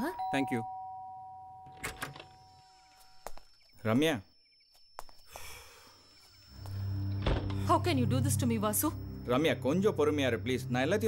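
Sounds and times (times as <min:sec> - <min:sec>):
two-tone doorbell chime: 0:00.0 - 0:01.7.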